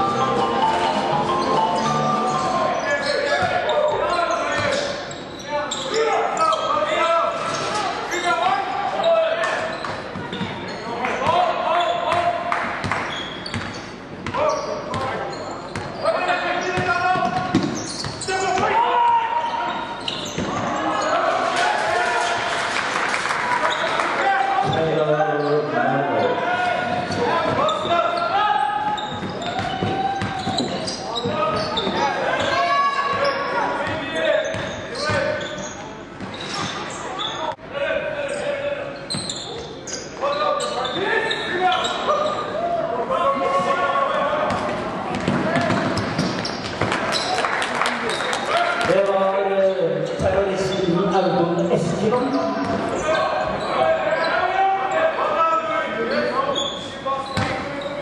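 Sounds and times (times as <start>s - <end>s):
echoing voices and shouts: 0.0s - 13.2s, 14.3s - 58.0s
basketball bouncing on court: 16.8s - 18.2s, 28.9s - 31.8s, 33.1s - 35.3s.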